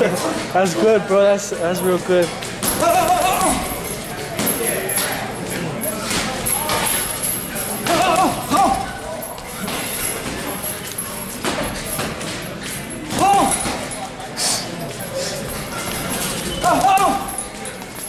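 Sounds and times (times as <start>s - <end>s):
voices: 0.0s - 18.0s.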